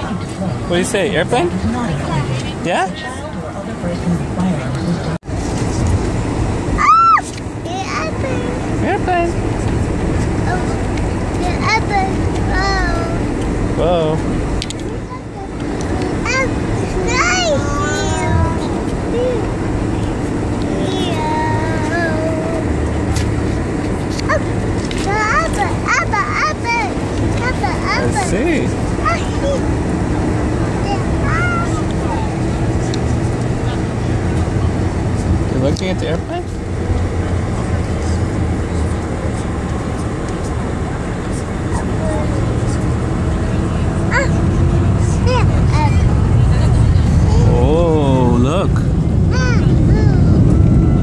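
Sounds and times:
airliner cabin rumble: 0.0s - 51.0s
faint voices: 6.8s - 51.0s
small child vocalizing: 44.1s - 44.4s, 49.3s - 50.5s.

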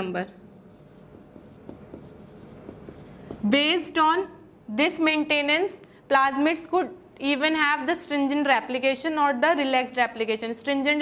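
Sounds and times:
marker writing on whiteboard: 0.5s - 3.9s.

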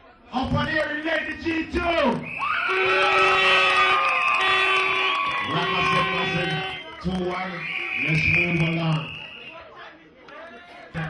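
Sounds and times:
crowd noise: 0.0s - 11.0s
plastic horns blowing: 2.7s - 6.9s.

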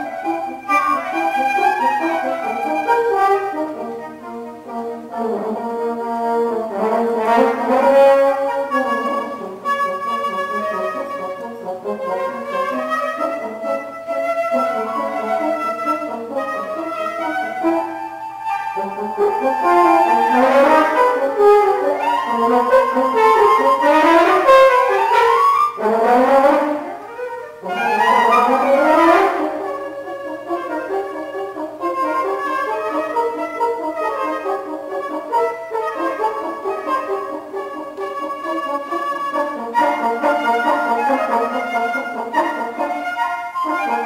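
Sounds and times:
flute: 0.0s - 44.0s
french horn: 0.0s - 44.0s.

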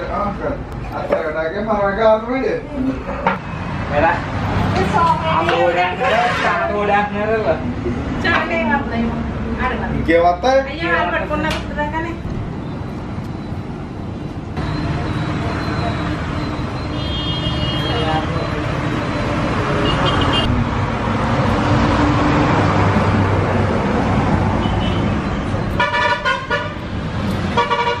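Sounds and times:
busy road traffic: 0.0s - 28.0s
vehicle horns tooting: 14.8s - 18.4s, 19.7s - 20.5s, 24.6s - 28.0s.

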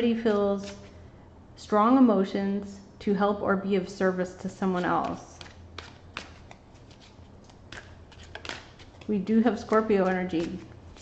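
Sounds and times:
cards shuffled by hand: 5.0s - 11.0s.

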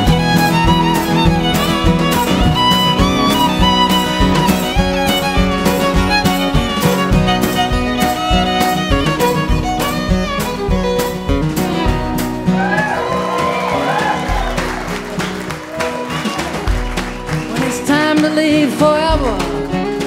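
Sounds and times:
fiddle sliding notes: 0.0s - 17.4s
steady drum beat: 0.0s - 20.0s
strummed acoustic guitar: 0.0s - 20.0s.

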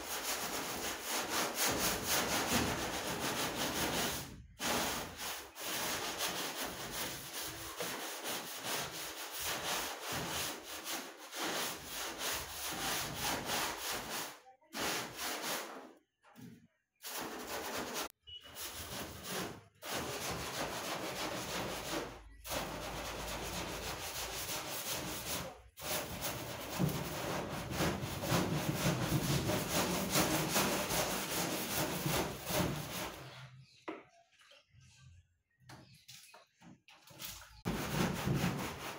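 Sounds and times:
stiff broom scrubbing: 0.0s - 15.9s, 17.0s - 33.4s, 37.2s - 38.9s.

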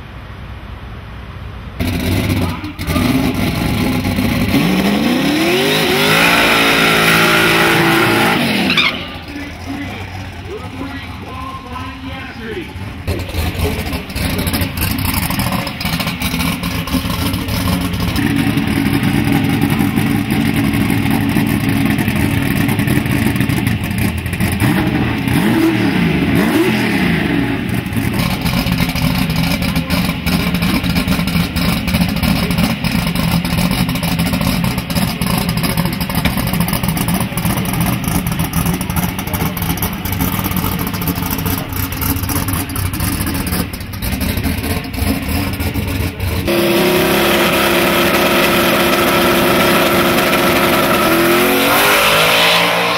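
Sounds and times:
engine idling loudly: 9.1s - 26.5s, 27.7s - 52.2s.

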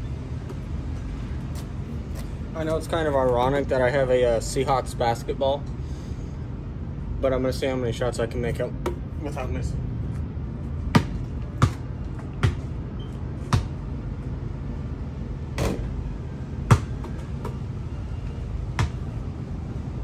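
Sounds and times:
basketball bouncing on pavement: 8.8s - 9.0s, 10.8s - 13.8s, 16.6s - 17.6s, 18.7s - 19.2s.

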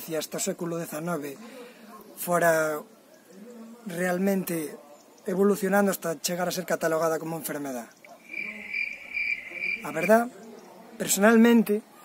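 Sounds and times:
cricket trilling: 8.0s - 10.3s.

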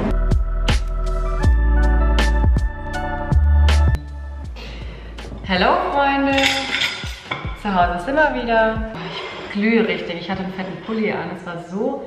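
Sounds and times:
background music with low thuds: 0.0s - 9.0s
young woman's voice: 5.5s - 6.7s, 7.6s - 12.0s.

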